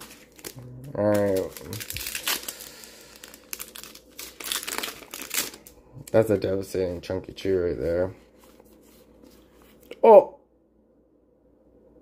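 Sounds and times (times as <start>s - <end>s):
foil wrapper crinkling: 0.0s - 6.7s.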